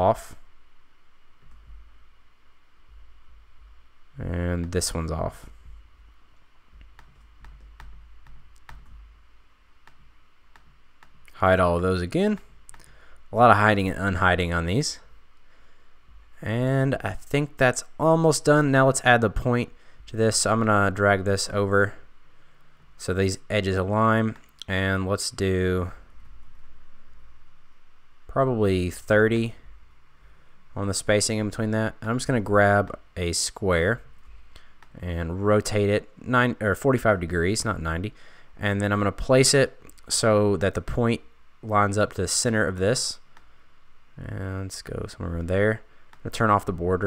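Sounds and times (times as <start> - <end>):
faint low hum: 0.0 - 47.0
faint steady hiss: 0.0 - 47.0
computer mouse clicking: 6.8 - 9.0, 9.8 - 11.4.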